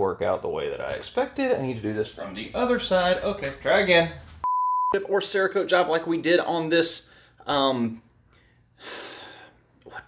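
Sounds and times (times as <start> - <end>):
man speaking: 0.0 - 4.2
man breathing: 8.3 - 9.7.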